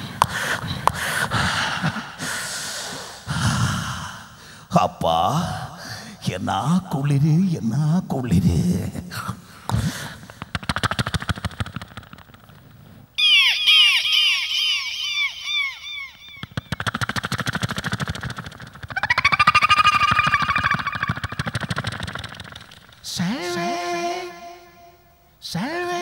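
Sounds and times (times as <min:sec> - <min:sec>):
person making vocal clicking: 0:00.2 - 0:01.4, 0:09.7 - 0:12.2, 0:16.4 - 0:19.4
vocal rising-and-falling chirps: 0:13.2 - 0:17.6, 0:18.9 - 0:22.8
vocal whistle-like tone: 0:13.2 - 0:18.1, 0:18.9 - 0:22.8.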